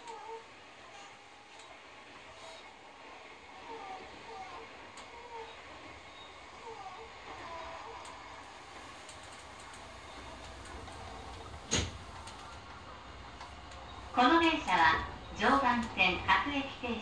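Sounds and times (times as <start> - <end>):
train running rumble: 0.0 - 17.0.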